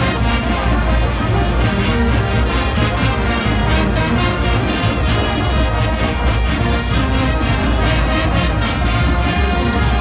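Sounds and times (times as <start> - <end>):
brass band playing loudly: 0.0 - 10.0.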